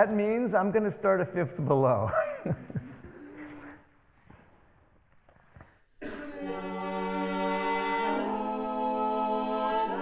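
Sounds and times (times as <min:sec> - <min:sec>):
vocal quartet singing a cappella: 0:06.0 - 0:10.0.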